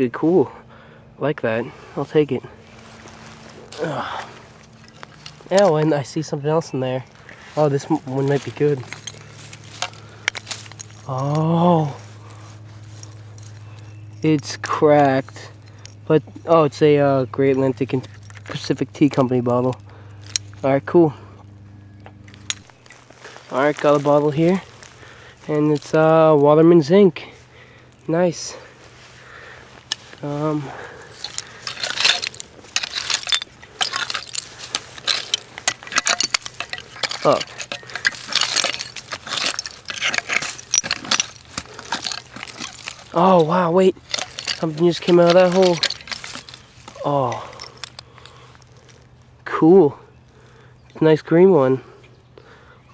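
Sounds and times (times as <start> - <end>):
low hum: 0.0 - 50.9
tool clinking on buried glass: 2.9 - 11.5, 12.2 - 20.7, 21.4 - 26.0, 29.8 - 49.1
digging tool scraping soil: 29.8 - 47.4.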